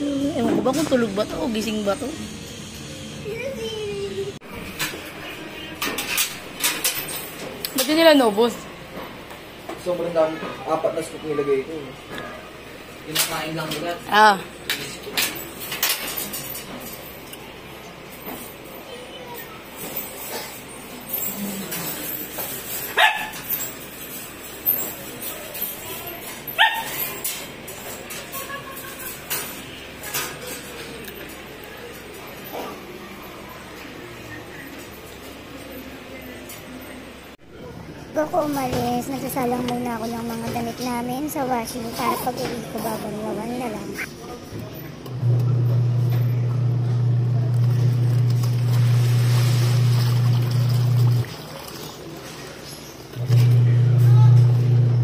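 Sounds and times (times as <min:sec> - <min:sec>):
metal cage and bowl clinking: 0:05.6 - 0:08.6, 0:14.8 - 0:17.5, 0:18.1 - 0:32.7
puppies yipping: 0:26.6 - 0:27.2.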